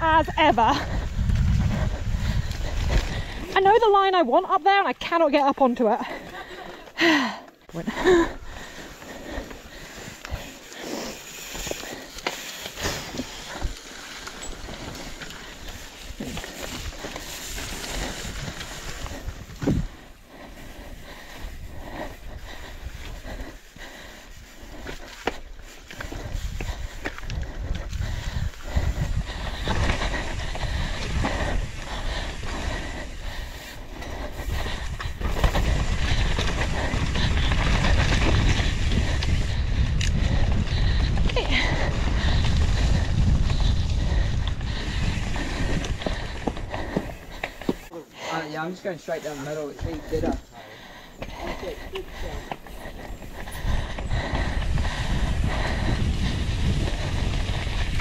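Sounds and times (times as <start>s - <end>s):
wind buffeting microphone: 0.0s - 4.1s, 14.6s - 47.9s, 49.8s - 58.0s
bike rattling over bumps: 0.0s - 4.5s, 8.0s - 48.0s, 49.7s - 58.0s
tyre noise on dirt: 24.2s - 48.0s.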